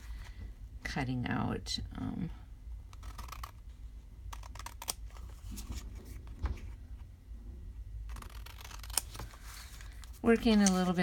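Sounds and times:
scissors snipping paper: 8.1 - 9.3.

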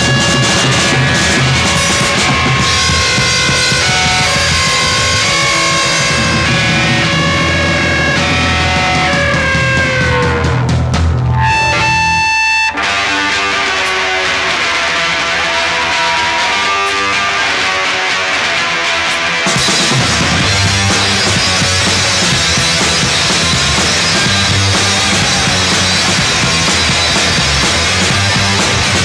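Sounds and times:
held guitar note ringing: 0.0 - 14.2
punk rock band playing: 0.0 - 29.0.

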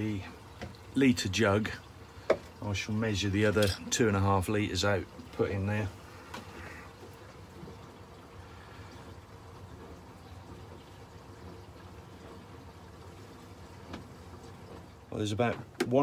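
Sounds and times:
oil trickling through funnel: 0.0 - 16.0.

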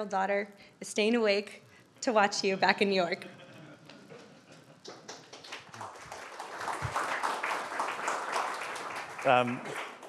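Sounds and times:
audience applauding: 4.8 - 10.0.

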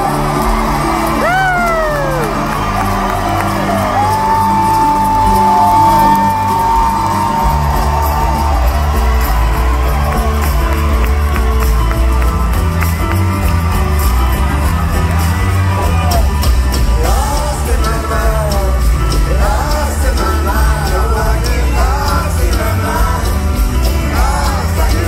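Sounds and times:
crowd whooping and cheering: 0.0 - 25.0
live band through pa: 0.0 - 25.0.

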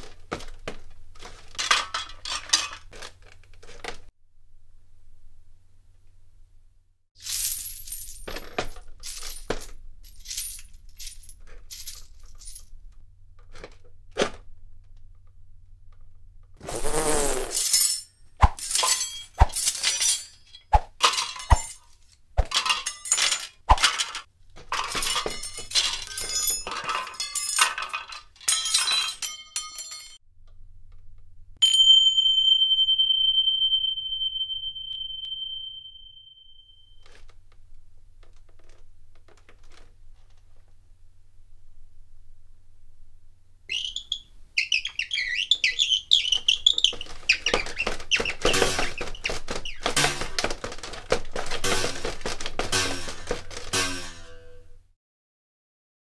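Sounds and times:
steady high-pitched tone: 31.9 - 37.0.

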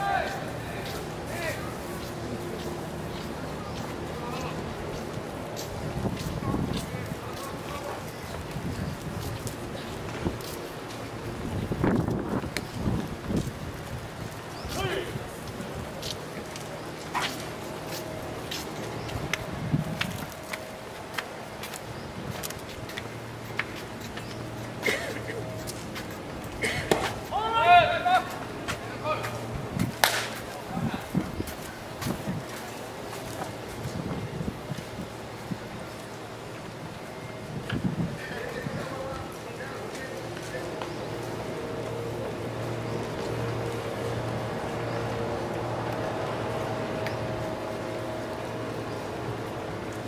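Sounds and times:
baseball smacking into mitt: 26.8 - 27.2, 30.0 - 30.4
player shouting: 27.3 - 28.4
ball cracking on leather: 30.0 - 30.4.

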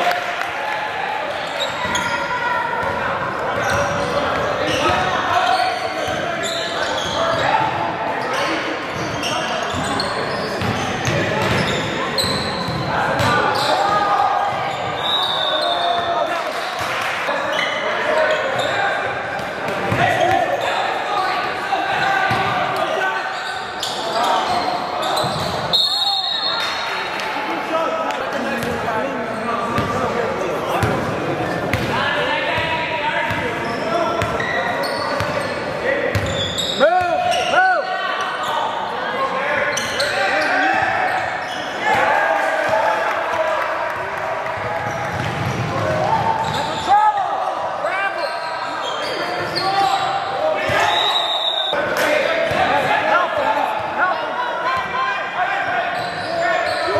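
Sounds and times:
sneakers squeaking: 1.3 - 27.2, 28.1 - 32.0, 32.6 - 42.1, 44.5 - 51.8, 55.8 - 56.9.

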